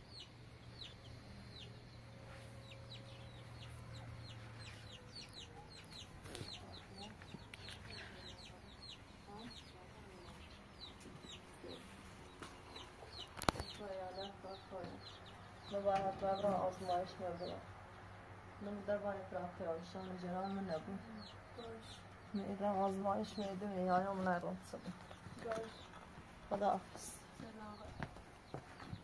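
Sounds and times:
birds chirping: 0:00.0 - 0:29.0.

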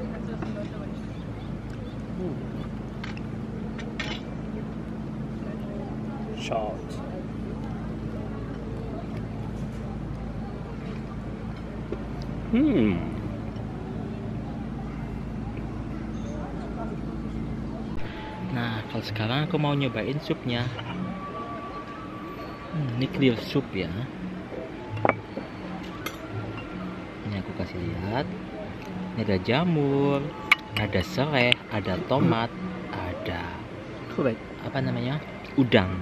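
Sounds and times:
faint voices talking: 0:00.0 - 0:36.0
low machine hum: 0:00.0 - 0:36.0
soft background music: 0:00.0 - 0:36.0.

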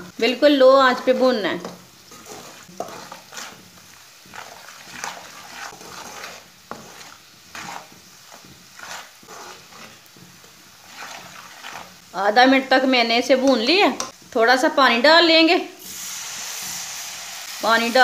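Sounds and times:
spices sizzling in oil: 0:00.0 - 0:18.0
metal spoon scraping pot: 0:00.9 - 0:12.0.

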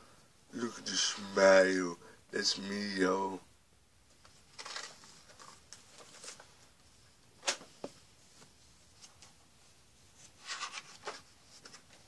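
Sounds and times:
book pages turning: 0:04.2 - 0:06.6, 0:10.2 - 0:12.0.

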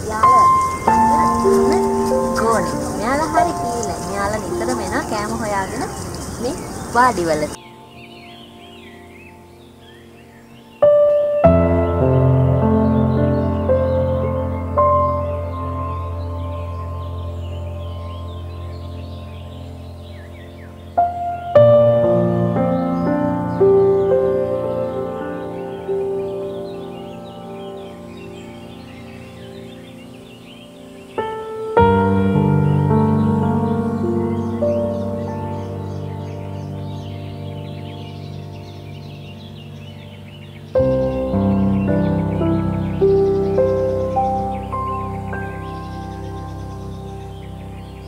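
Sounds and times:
soft ambient music: 0:00.0 - 0:06.0, 0:07.0 - 0:48.0
faint bird chirps: 0:00.0 - 0:11.4, 0:12.0 - 0:48.0.

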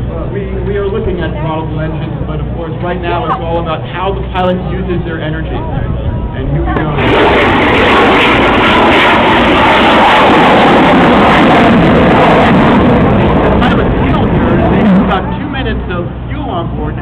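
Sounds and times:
rocket engine rushing: 0:00.0 - 0:17.0.

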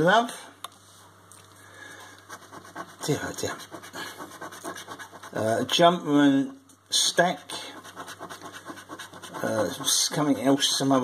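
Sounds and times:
coin scratching scratchcard: 0:02.3 - 0:05.5, 0:07.8 - 0:11.0.

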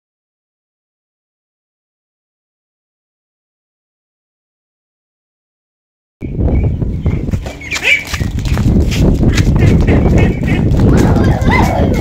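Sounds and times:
pattering footsteps on wet concrete: 0:07.3 - 0:12.0.

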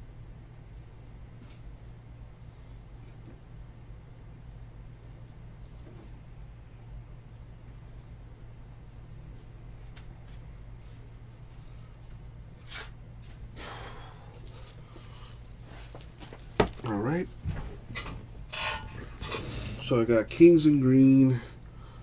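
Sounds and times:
steady low hum: 0:00.0 - 0:22.0
faint clicks and rustles: 0:14.2 - 0:19.9.

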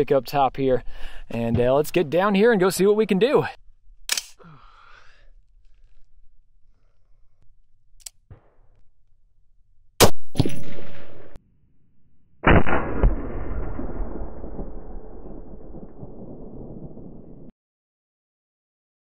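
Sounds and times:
rifle shot: 0:10.0 - 0:11.4, 0:12.4 - 0:17.5.

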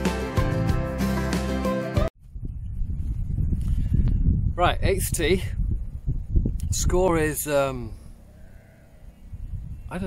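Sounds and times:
background music: 0:00.0 - 0:02.1
wind buffeting microphone: 0:02.2 - 0:10.0.

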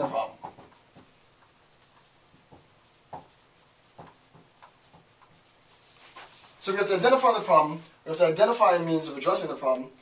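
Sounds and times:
marker writing on whiteboard: 0:00.0 - 0:06.6.

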